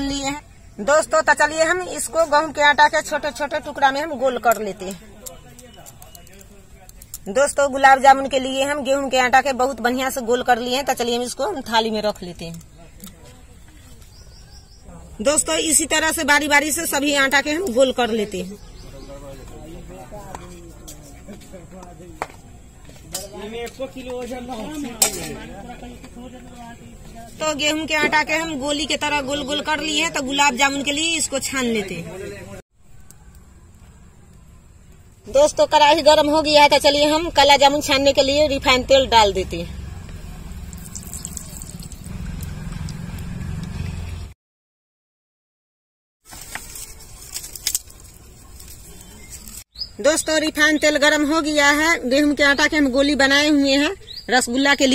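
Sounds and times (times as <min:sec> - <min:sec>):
oil hissing and crackling: 0:40.6 - 0:43.4.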